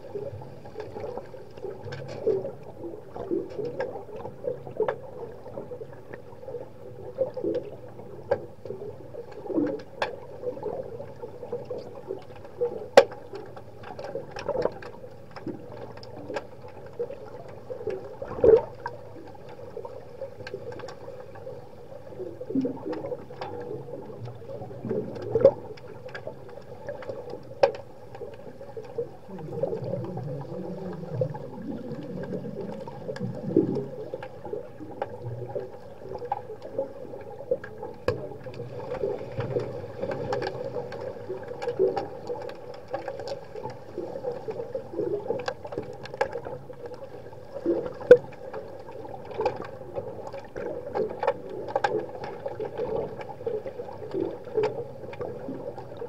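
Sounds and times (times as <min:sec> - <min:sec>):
steady underwater hum: 0:00.0 - 0:56.0
sharp underwater clicks and knocks: 0:00.7 - 0:06.3, 0:07.1 - 0:21.6, 0:22.4 - 0:56.0.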